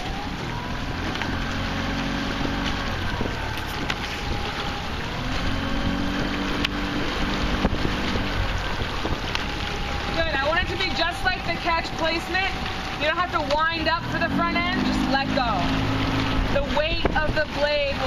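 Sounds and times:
small outboard motor running: 0.0 - 18.0
wind rumbling on microphone: 0.0 - 18.0.

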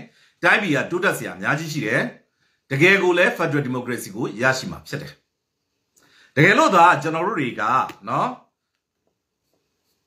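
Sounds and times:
man speaking: 0.0 - 5.3, 6.4 - 8.6.

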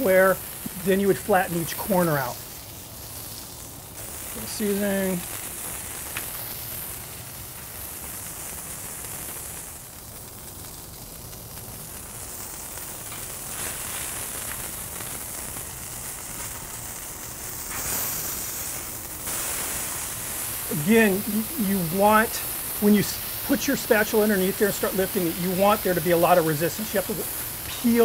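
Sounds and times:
meat patty sizzling on griddle: 0.0 - 28.0.

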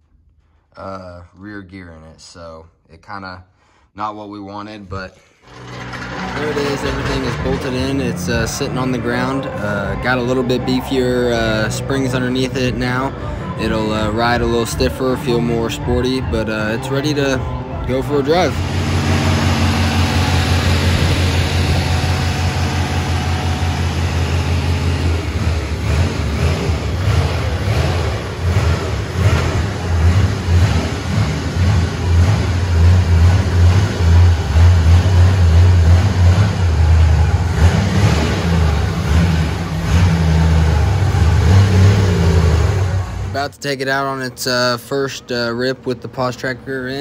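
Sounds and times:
car engine running: 5.5 - 43.4.

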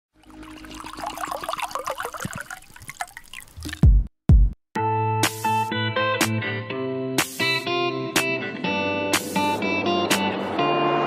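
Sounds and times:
liquid pouring into glasses: 0.2 - 3.9.

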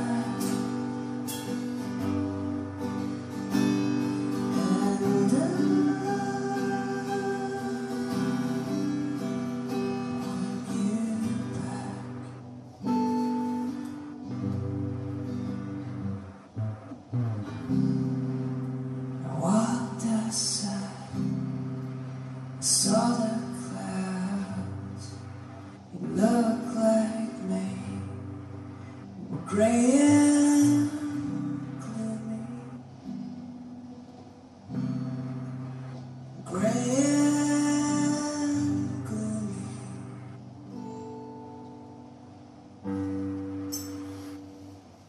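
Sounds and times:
acoustic guitar playing blues: 0.0 - 45.0.

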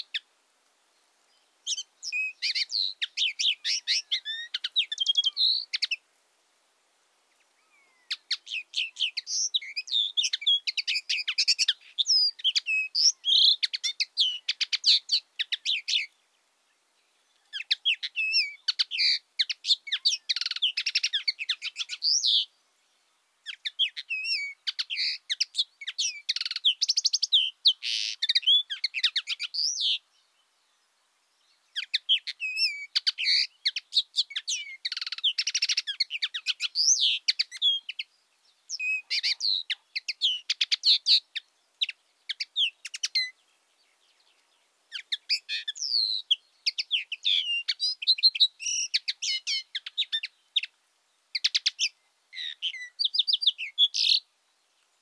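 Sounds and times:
songbird twittering and trilling: 0.9 - 6.0, 7.3 - 55.0.

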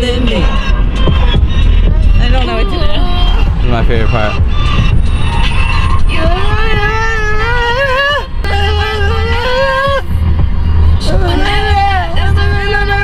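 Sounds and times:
car engine and road noise: 0.0 - 13.0.

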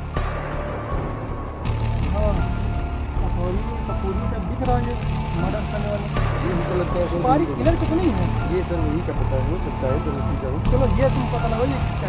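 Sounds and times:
music with low drone: 0.0 - 12.0.

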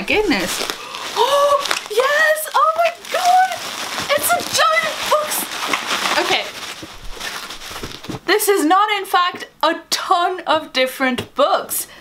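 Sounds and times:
steady rustling noise: 0.0 - 8.4
woman squealing and gasping: 0.8 - 1.8.

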